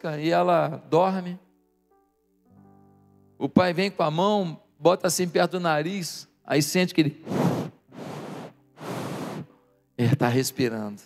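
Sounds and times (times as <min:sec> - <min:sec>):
man breathing into microphone: 0:07.2 - 0:09.5.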